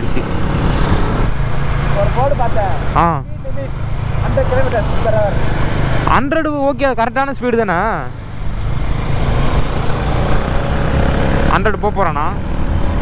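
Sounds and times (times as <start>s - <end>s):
motorcycle engine rumble: 0.0s - 13.0s
person speaking: 1.9s - 5.4s.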